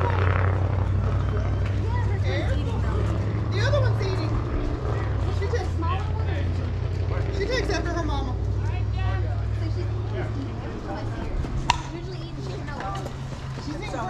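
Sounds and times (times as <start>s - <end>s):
people talking and calling out: 0.0s - 14.0s
steady low hum: 0.0s - 14.0s.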